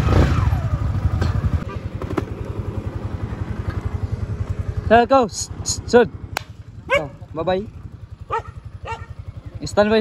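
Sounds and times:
motorcycle engine pulling away: 0:00.0 - 0:10.0.

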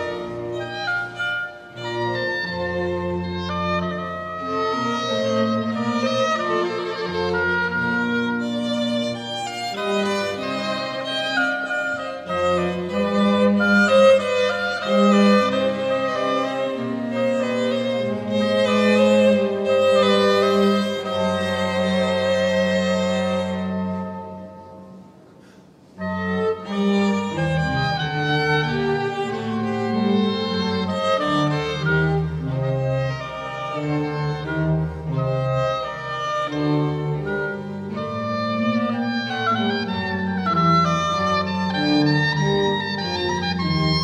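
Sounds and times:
violin melody: 0:00.0 - 0:44.0.

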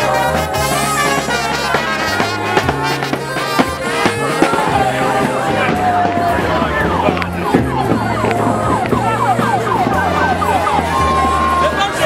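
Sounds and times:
music with low bass line: 0:00.0 - 0:12.0
electronic siren wailing: 0:04.3 - 0:12.0.

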